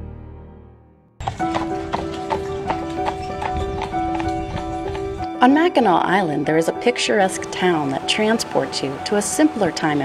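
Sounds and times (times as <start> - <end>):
background music steady tone: 0.0 - 10.0
horse hooves on pavement: 1.2 - 10.0.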